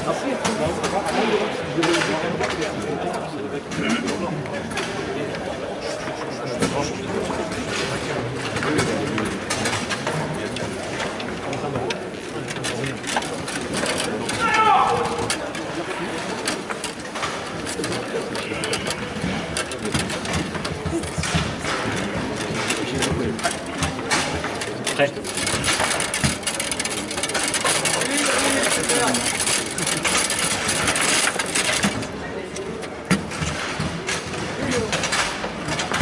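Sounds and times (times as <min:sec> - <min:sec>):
voices in room: 0:00.0 - 0:36.0
foosball ball and rods clattering: 0:00.2 - 0:36.0.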